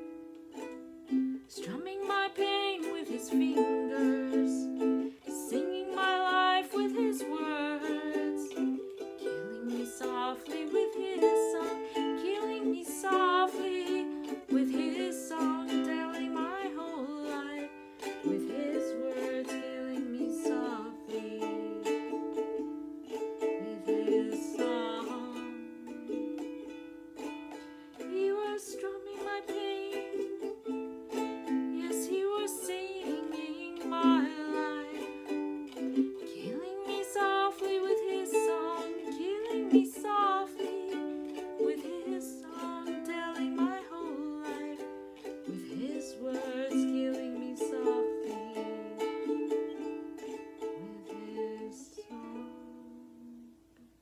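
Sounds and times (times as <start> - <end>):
ukulele chords: 0.0 - 54.0
woman singing a slow ballad: 1.5 - 8.7, 9.3 - 17.7, 18.3 - 22.0, 23.6 - 26.0, 31.8 - 35.2, 36.2 - 44.9, 45.5 - 49.1, 50.8 - 53.6.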